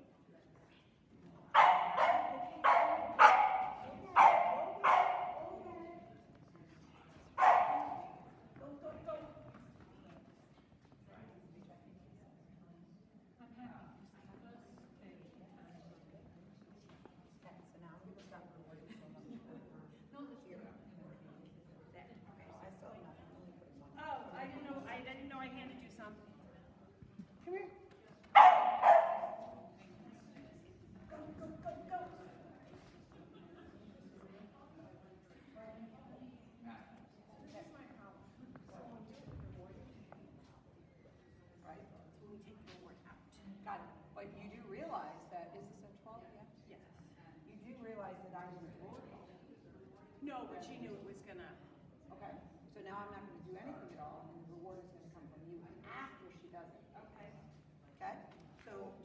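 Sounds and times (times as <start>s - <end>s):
small dog barking: 1.6s - 5.4s, 7.4s - 8.2s, 28.4s - 29.5s.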